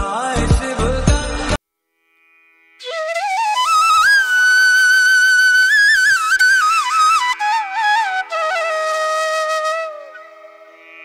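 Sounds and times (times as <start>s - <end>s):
bamboo flute melody: 2.8s - 10.7s.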